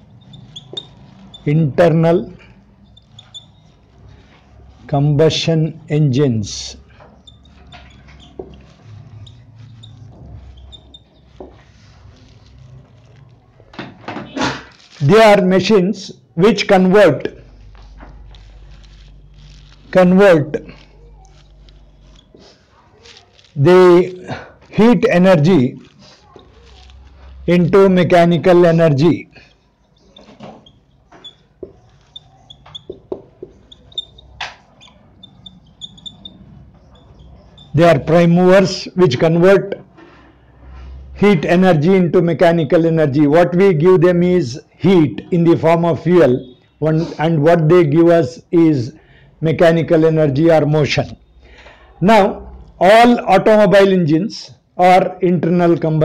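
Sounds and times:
marker squeaking on whiteboard: 0:00.0 - 0:48.9.

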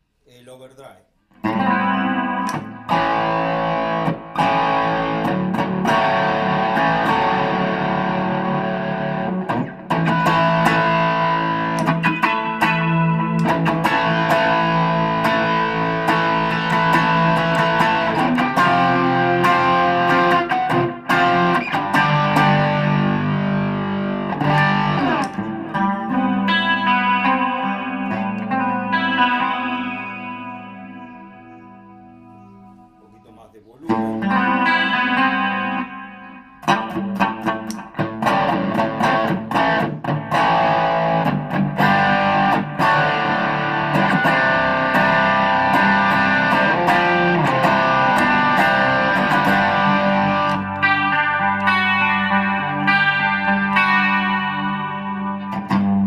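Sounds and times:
electric guitar picked passage: 0:01.4 - 0:33.0, 0:33.9 - 0:56.0.

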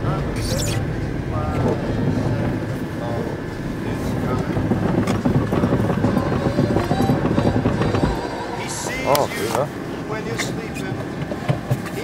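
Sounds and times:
car tyres rumbling on rough snow: 0:00.0 - 0:12.0.

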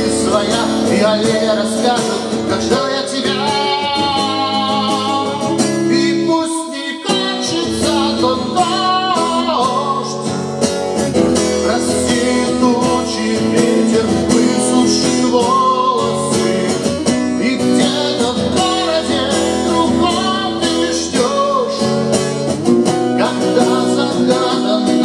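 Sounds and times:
man singing: 0:00.0 - 0:10.4, 0:11.2 - 0:25.0
acoustic guitar strumming: 0:00.0 - 0:25.0.

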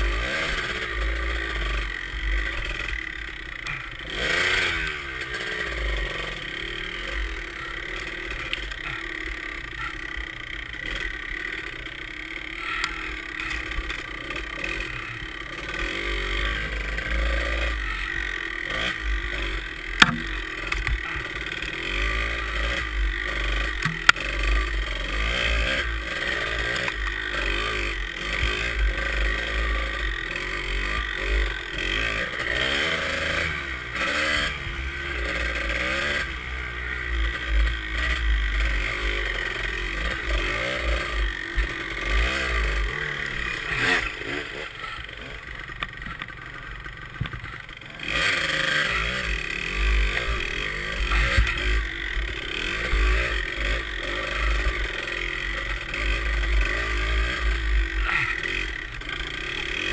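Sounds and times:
dirt bike engine revving: 0:00.0 - 0:59.9
chassis rattling: 0:13.1 - 0:24.8.

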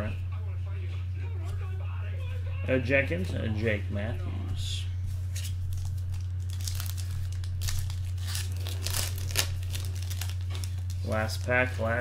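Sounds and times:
steady low hum: 0:00.0 - 0:12.0
wrapper crinkling and tearing: 0:05.4 - 0:12.0.

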